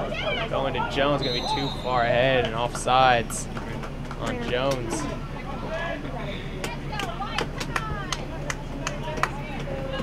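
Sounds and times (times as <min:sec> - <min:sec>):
players shouting: 0:00.0 - 0:02.6.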